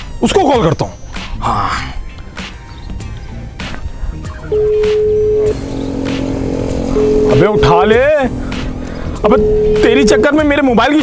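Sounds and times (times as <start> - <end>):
telephone ringback tone: 4.5 - 8.2, 9.1 - 10.7.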